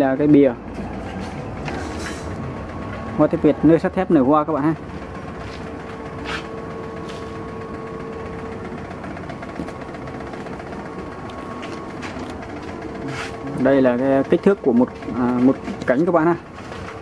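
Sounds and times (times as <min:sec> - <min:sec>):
steady machine hum: 0:00.0 - 0:17.0.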